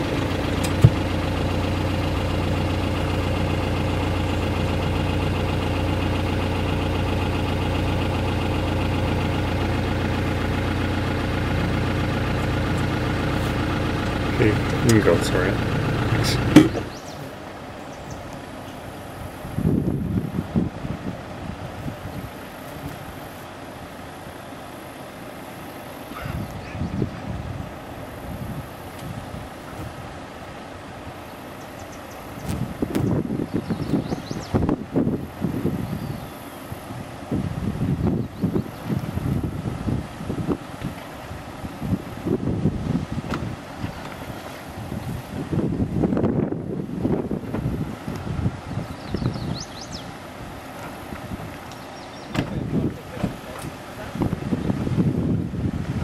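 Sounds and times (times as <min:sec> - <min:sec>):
engine revving: 0:00.0 - 0:17.4.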